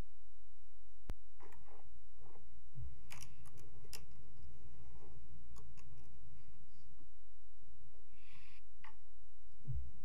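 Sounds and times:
steady low hum: 0.0s - 10.0s
small clicks: 3.0s - 4.2s.

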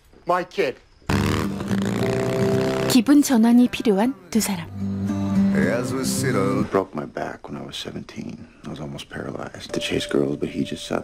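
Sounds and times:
motorcycle engine running: 1.1s - 3.1s
woman speaking: 2.9s - 4.7s.

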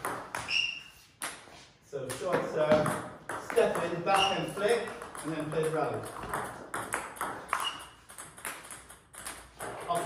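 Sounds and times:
ping pong ball clicking: 4.8s - 10.0s.

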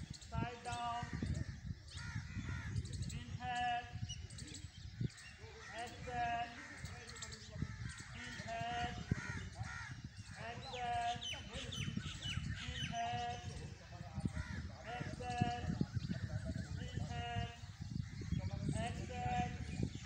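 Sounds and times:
crows cawing: 7.6s - 10.2s.

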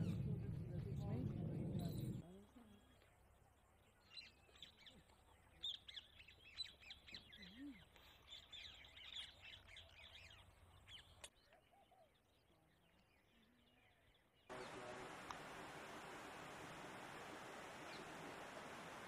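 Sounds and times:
small birds chirping: 0.0s - 15.6s, 17.5s - 19.0s.

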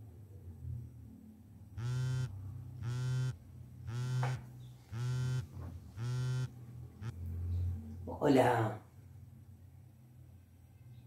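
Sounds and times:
phone vibrating: 1.8s - 7.2s.

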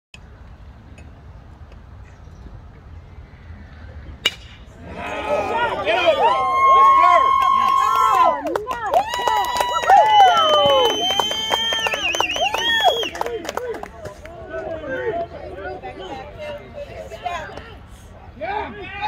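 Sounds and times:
bat hitting baseball: 4.2s - 4.8s
spectators cheering and yelling: 4.8s - 15.1s
scattered clapping: 7.3s - 15.3s.

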